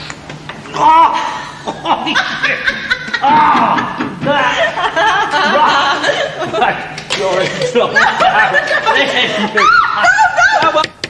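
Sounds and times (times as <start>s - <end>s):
man laughing: 1.0s - 10.8s
woman laughing: 1.7s - 6.7s, 7.5s - 10.8s.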